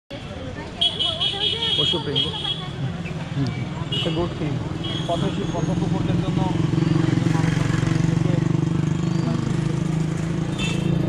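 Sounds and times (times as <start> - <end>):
road traffic engine hum: 0.1 - 11.0
voices: 0.1 - 11.0.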